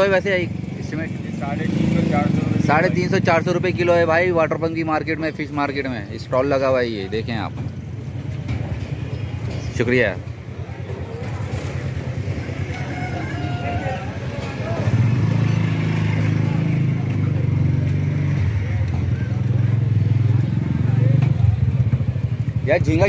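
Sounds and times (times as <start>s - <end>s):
street market chatter: 0.0s - 23.0s.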